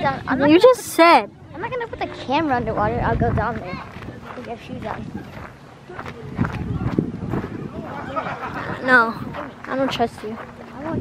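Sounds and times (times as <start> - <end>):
footsteps on gravel: 2.0 - 7.8, 9.1 - 11.0.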